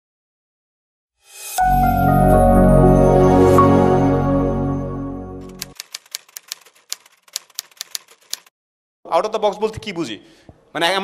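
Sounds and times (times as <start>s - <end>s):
typewriter keystrokes: 5.4s - 8.5s.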